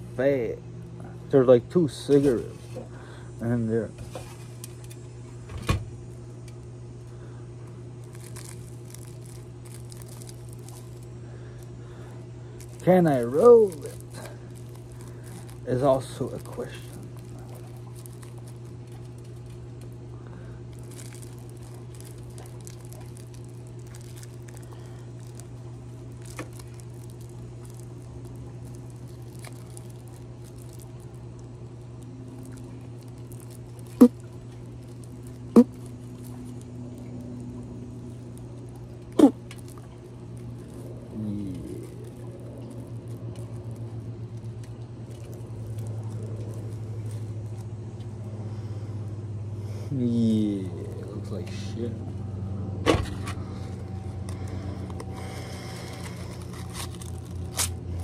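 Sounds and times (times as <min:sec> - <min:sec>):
steady low hum: 0:00.0 - 0:58.0
rolling paper crinkling: 0:01.4 - 0:48.8, 0:53.1 - 0:58.0.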